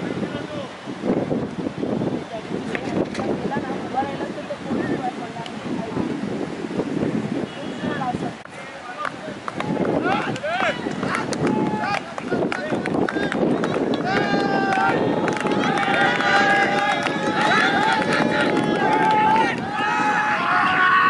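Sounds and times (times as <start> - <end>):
people talking and calling out: 1.8 - 21.0.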